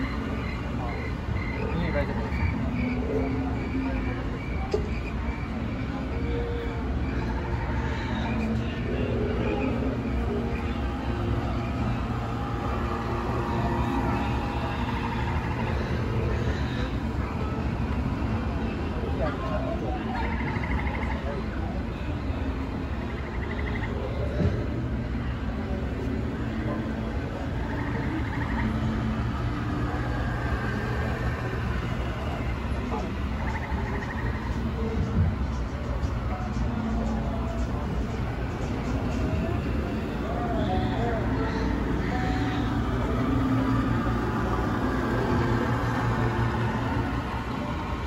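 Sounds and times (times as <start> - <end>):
faint voices: 0.0 - 48.0
low rumble of ride ambience: 0.0 - 48.0.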